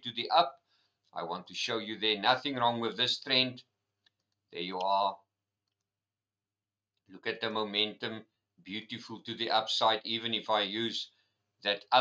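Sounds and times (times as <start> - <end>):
man speaking: 0.0 - 0.6, 1.2 - 3.7, 4.6 - 5.3, 7.1 - 12.0
computer mouse clicks: 5.6 - 5.9.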